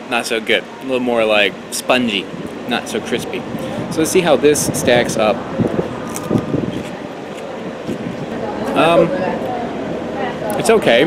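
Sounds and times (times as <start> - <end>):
outdoor background noise: 0.0 - 11.0
chewing: 6.0 - 8.0
cucumber crunching: 6.0 - 8.0.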